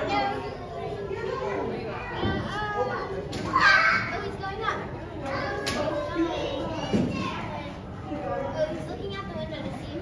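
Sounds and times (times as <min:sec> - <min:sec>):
children's voices and chatter: 0:00.0 - 0:10.0.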